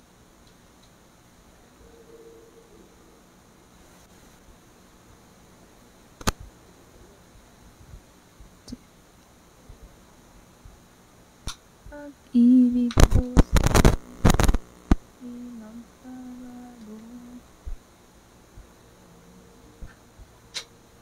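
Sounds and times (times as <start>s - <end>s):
woman humming: 11.9s - 13.9s, 15.2s - 17.5s.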